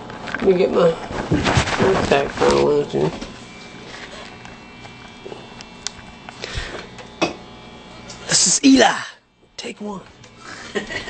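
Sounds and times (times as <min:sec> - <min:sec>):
steady low hum: 0:00.7 - 0:11.0.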